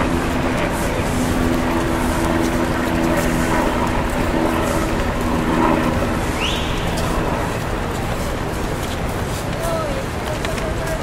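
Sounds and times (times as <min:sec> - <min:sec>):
low engine hum: 0:00.0 - 0:11.0
street traffic din: 0:00.0 - 0:11.0.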